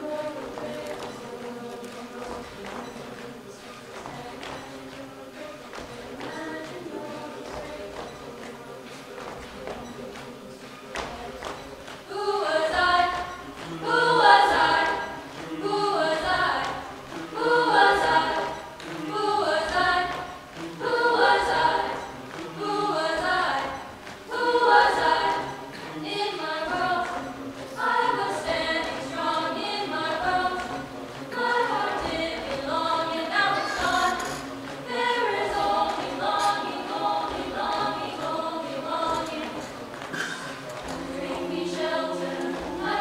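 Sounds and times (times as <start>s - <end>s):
choir singing a cappella: 0.0s - 43.0s.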